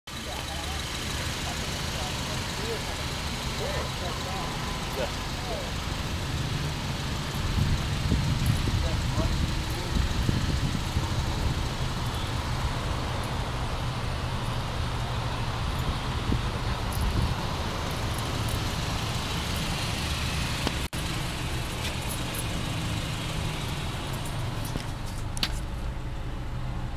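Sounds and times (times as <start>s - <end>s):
car engine idling: 0.1s - 26.9s.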